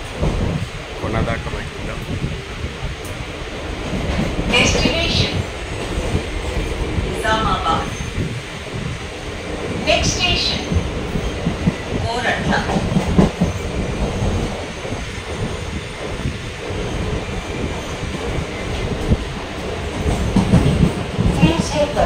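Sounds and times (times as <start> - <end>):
track knocks and rattles: 0.0 - 9.0, 9.7 - 22.0
train wheels on rails: 0.0 - 22.0.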